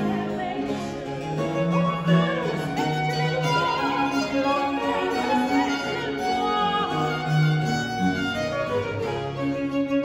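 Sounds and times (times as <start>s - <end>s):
baroque violin: 0.0s - 10.0s.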